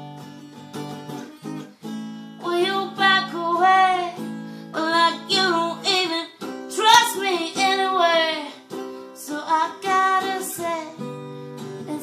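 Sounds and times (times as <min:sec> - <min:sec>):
strummed acoustic guitar: 0:00.0 - 0:12.0
woman singing wordlessly: 0:02.4 - 0:11.2, 0:11.8 - 0:12.0.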